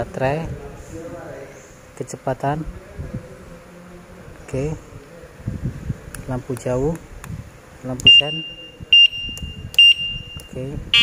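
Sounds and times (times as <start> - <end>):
turn-signal beeper: 8.1 - 11.0.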